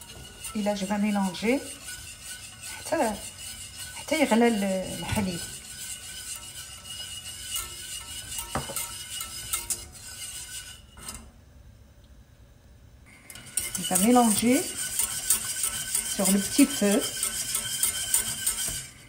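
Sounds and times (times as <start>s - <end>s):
whisk tapping on pan: 0.0s - 10.6s, 13.3s - 19.0s
wire whisk scraping a saucepan: 0.0s - 11.3s, 13.3s - 19.0s.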